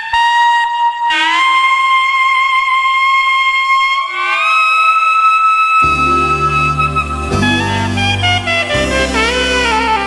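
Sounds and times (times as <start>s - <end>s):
saxophone holding high note: 0.1s - 10.0s.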